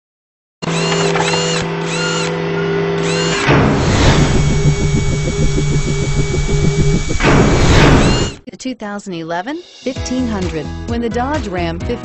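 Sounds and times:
pulsing buzzy machine-like sound: 0.6 - 8.4
steady electronic chord: 2.9 - 8.4
sweeping effect: 3.3 - 8.4.

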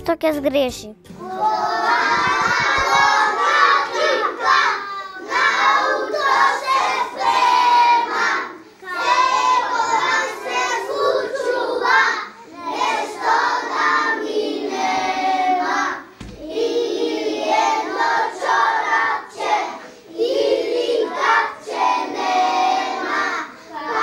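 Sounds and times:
young children singing: 1.1 - 24.0.

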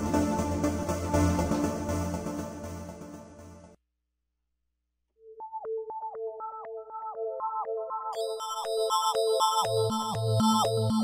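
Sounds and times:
pulsing synth sine tones: 6.1 - 11.0.

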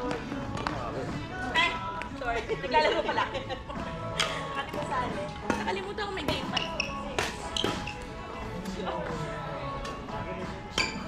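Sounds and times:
players' voices: 0.0 - 11.0.

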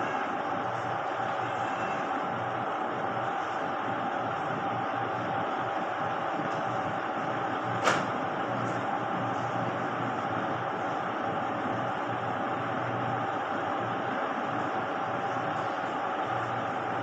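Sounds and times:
room hum and hiss: 0.0 - 17.0.

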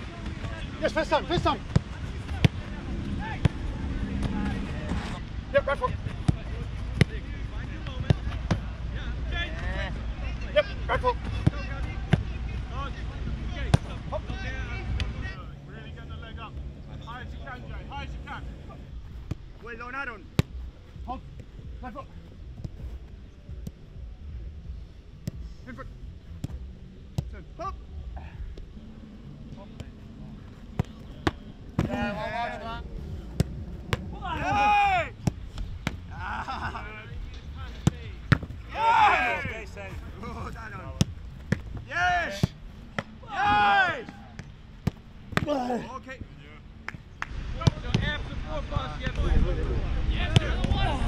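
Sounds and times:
football kick thuds: 1.2 - 2.6, 30.6 - 32.2, 33.2 - 36.2, 37.7 - 45.7
distant shouting voices: 34.1 - 35.3, 38.6 - 40.0, 41.9 - 44.4
wind rumble on microphone: 48.3 - 51.0.

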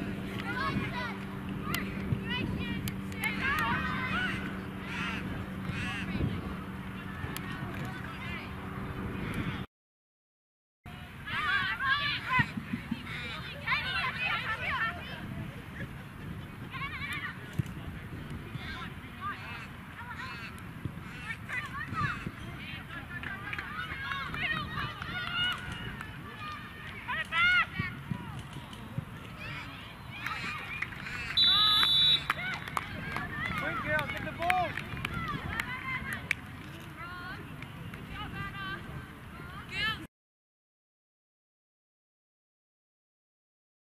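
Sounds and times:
steady field noise: 0.0 - 9.7, 10.9 - 40.1
distant players shouting: 0.3 - 6.4, 29.4 - 36.2
referee's whistle blast: 31.4 - 32.3.

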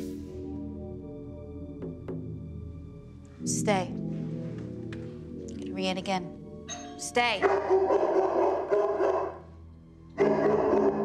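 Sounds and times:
sustained music chords: 0.0 - 11.0.

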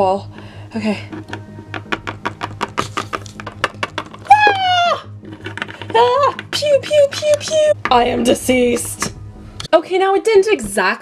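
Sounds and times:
quiet music with pulsing beat: 0.0 - 11.0.

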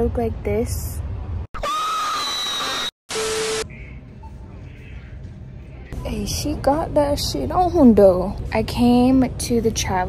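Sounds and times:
scream-like sound effect: 1.6 - 3.6
faint store ambience: 3.6 - 10.0.

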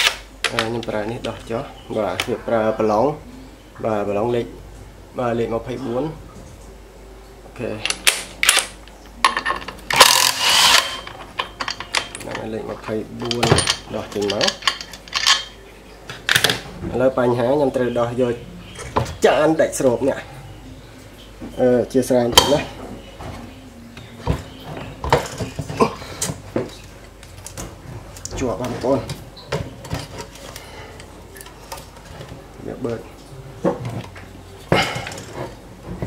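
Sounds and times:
metallic knocks and clinks: 13.2 - 15.6.

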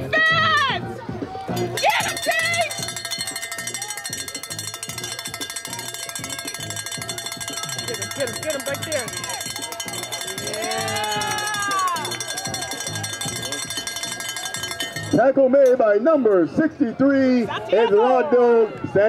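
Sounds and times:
voices shouting: 0.0 - 19.0
bell ringing rapidly: 1.6 - 15.8.

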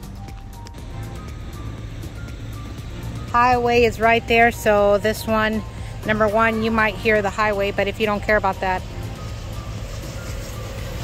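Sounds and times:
highway traffic rumble and tyre hiss: 0.0 - 11.0.

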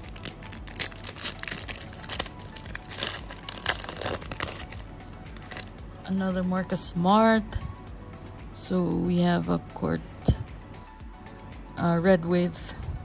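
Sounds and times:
foil wrapper tearing and crinkling: 0.0 - 5.7
quiet background music: 0.0 - 13.0.

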